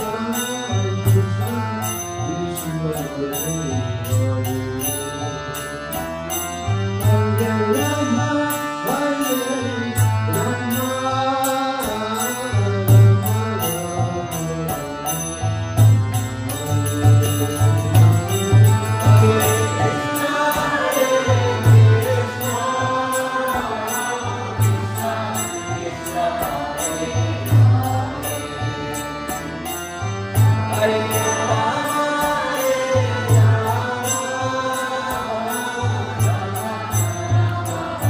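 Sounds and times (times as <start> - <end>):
chanted mantra: 0.0 - 6.1, 7.0 - 15.4, 16.6 - 29.5, 30.4 - 38.0
harmonium chords: 0.0 - 38.0.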